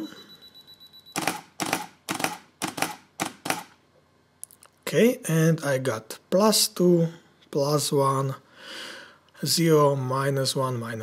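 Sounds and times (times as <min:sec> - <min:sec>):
camera self-timer beeping: 0:00.0 - 0:03.7
camera shutter clacking: 0:01.2 - 0:03.7.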